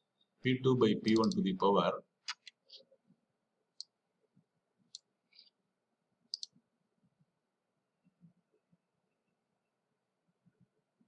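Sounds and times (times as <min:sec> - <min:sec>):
computer mouse clicks: 0:01.1 - 0:01.4, 0:06.3 - 0:06.6.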